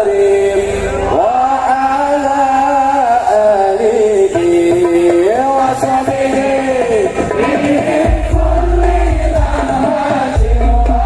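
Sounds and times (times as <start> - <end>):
devotional singing over sound system: 0.0 - 11.0.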